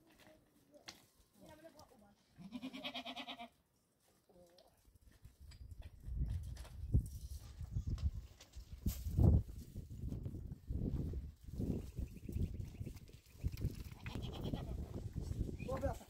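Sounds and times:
goats bleating: 2.4s - 3.6s, 14.0s - 14.8s.

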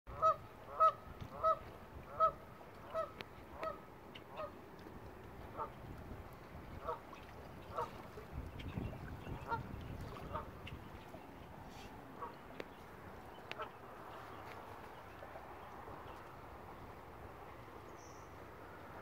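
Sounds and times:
goose honking: 0.1s - 4.5s.

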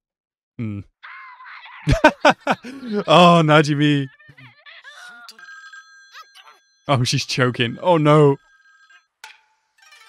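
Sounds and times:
phone ringing: 2.6s - 4.0s, 4.8s - 10.0s.

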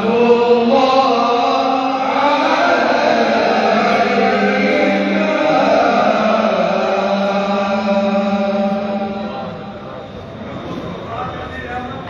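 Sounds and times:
voices chanting in unison: 0.0s - 9.4s.

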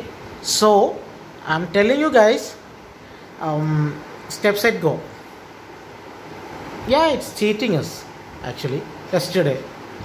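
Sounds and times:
faint background hiss: 0.0s - 10.0s.

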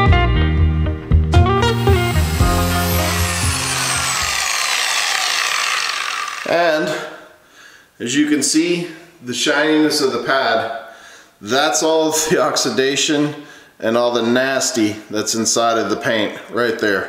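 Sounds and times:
electric polisher running: 1.4s - 6.5s
polisher winding down whine: 1.5s - 6.5s.

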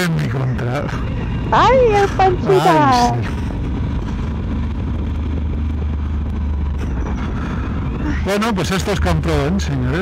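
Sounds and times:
wind and road noise: 0.2s - 10.0s.

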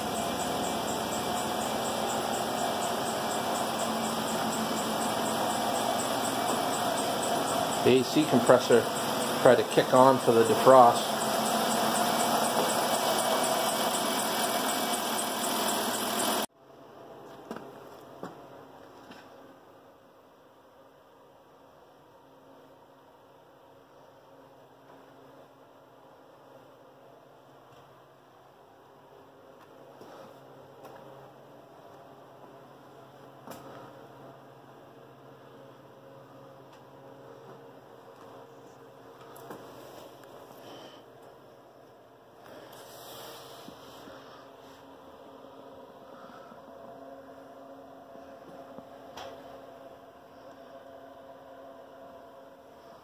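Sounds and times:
minivan engine running: 0.0s - 16.5s.

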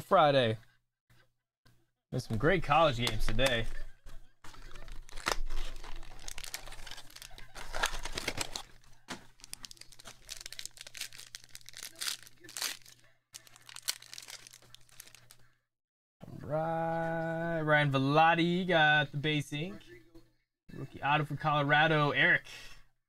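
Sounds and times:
foil pack crinkling and tearing: 4.5s - 15.4s.

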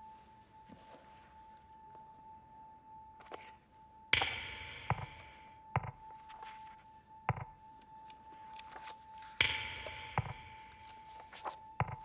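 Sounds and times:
faint steady high tone: 0.0s - 12.0s
sharp ringing strike: 4.2s - 5.9s.

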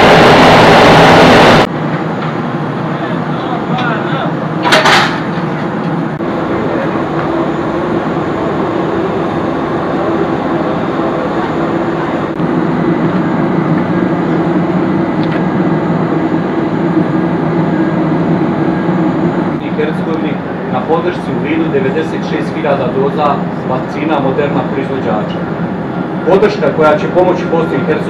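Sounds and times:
engine drone: 0.0s - 28.0s.

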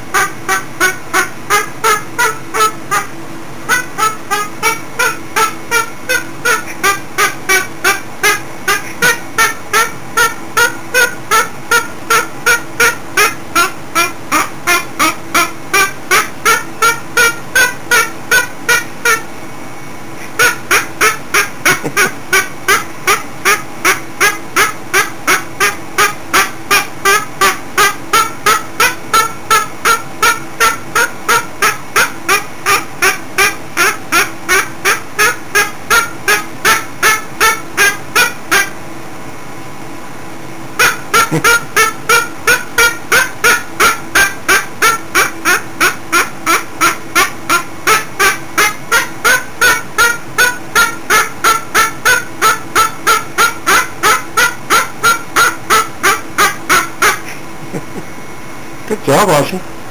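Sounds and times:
cockatoo calling: 0.1s - 19.3s, 20.2s - 38.8s, 40.8s - 58.2s.

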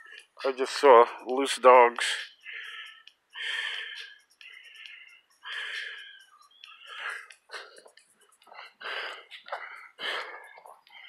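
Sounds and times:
faint high-pitched ticking: 0.0s - 11.0s.

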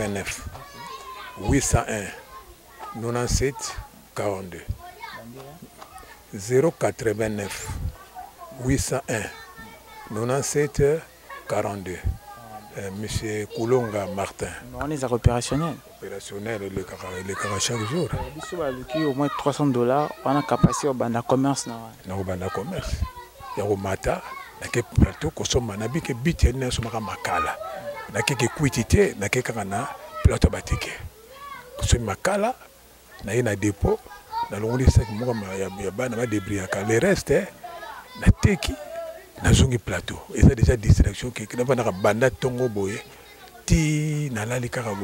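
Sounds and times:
man talking: 0.0s - 0.5s, 1.4s - 2.2s, 3.0s - 5.7s, 8.6s - 9.3s, 10.1s - 23.0s, 23.6s - 31.1s, 31.8s - 32.6s, 33.2s - 37.6s, 38.2s - 45.0s.

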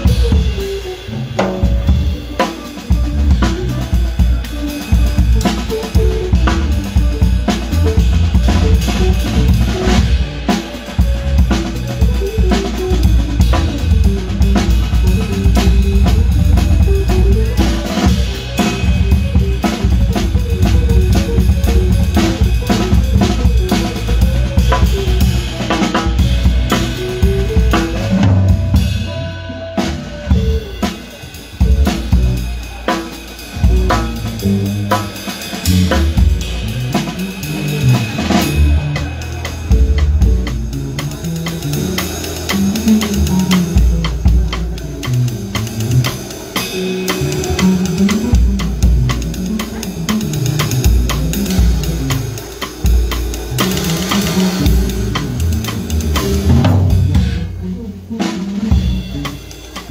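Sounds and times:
deep bass line: 0.0s - 30.9s, 31.5s - 32.7s, 33.6s - 59.9s
drum kit playing: 0.0s - 59.9s
melody line: 5.5s - 30.9s.

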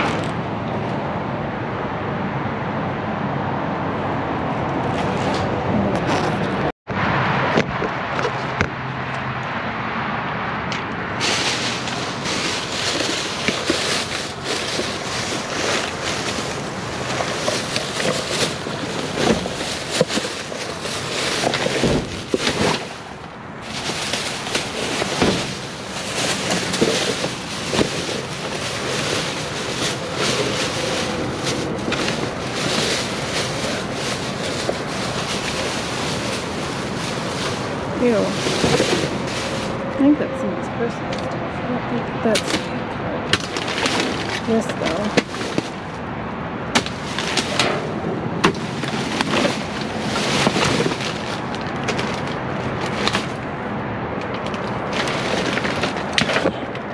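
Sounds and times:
cardboard crackling and scraping: 11.2s - 39.8s, 43.3s - 46.0s, 46.7s - 53.5s, 54.2s - 56.9s
plastic trash bags rustling: 11.2s - 40.2s, 43.3s - 46.0s, 46.6s - 53.6s, 54.4s - 56.9s.

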